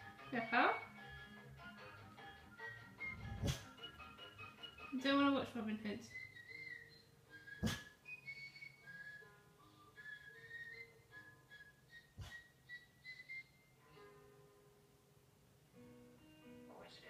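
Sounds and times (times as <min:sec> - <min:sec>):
faint whistled melody: 0:00.3 - 0:01.2, 0:02.5 - 0:14.1.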